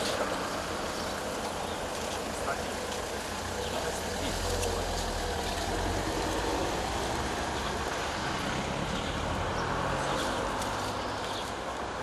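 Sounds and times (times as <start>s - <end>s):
low rumble of road traffic: 0.0s - 12.0s
outdoor background noise: 0.0s - 12.0s.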